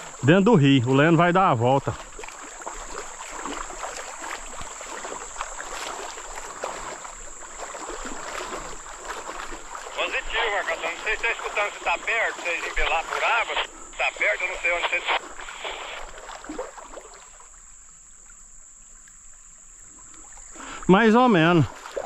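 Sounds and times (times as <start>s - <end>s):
water sloshing around wading legs: 0.0s - 13.5s, 14.2s - 22.0s
voice over two-way radio: 9.9s - 16.0s.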